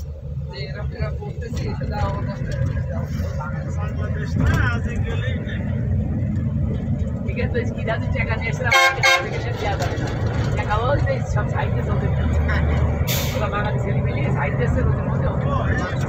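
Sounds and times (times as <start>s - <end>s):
engine and road rumble: 0.0s - 16.0s
vehicle horn honking: 8.7s - 9.4s.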